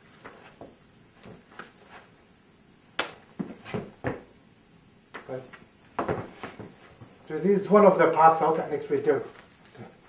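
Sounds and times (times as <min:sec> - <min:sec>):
arms and sleeves brushing: 0:00.0 - 0:02.2, 0:06.0 - 0:07.1
sharp smack: 0:03.0 - 0:03.2.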